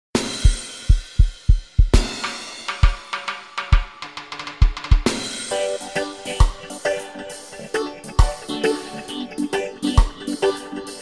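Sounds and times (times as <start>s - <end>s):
reggae drum groove: 0.2s - 11.0s.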